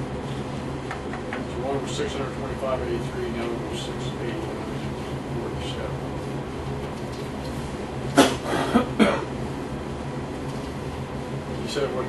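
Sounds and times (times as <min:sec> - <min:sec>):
low room hum: 0:00.0 - 0:12.0
short coughs: 0:08.2 - 0:09.3.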